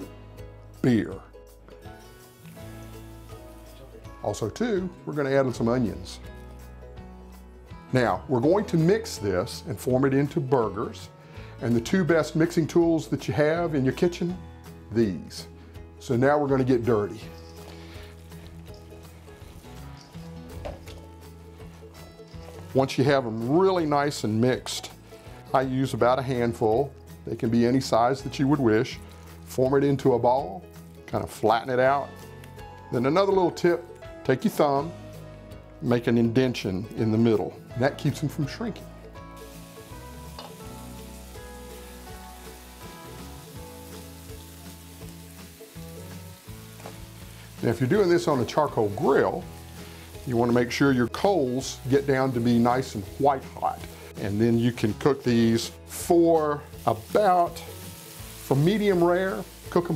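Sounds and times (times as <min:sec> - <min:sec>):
soft background music: 0:00.0 - 0:59.9
burger patties sizzling in pan: 0:02.0 - 0:04.1, 0:16.6 - 0:25.5, 0:26.2 - 0:31.0, 0:39.2 - 0:59.9.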